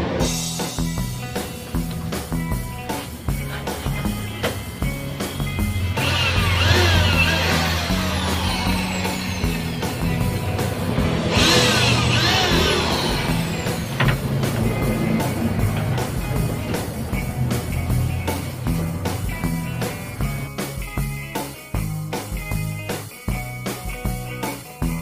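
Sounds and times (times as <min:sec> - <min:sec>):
background music with steady beat: 0:00.0 - 0:25.0
electric drill boring into wood: 0:05.2 - 0:16.6.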